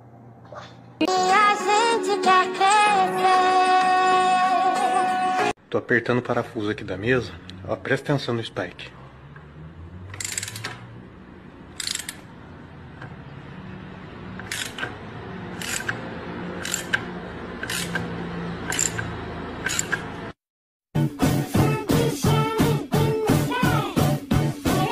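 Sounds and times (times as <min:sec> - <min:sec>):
ratchet wrench clicking: 0:10.1 - 0:10.8, 0:11.7 - 0:12.3, 0:14.4 - 0:15.0, 0:15.6 - 0:16.0, 0:16.6 - 0:20.1.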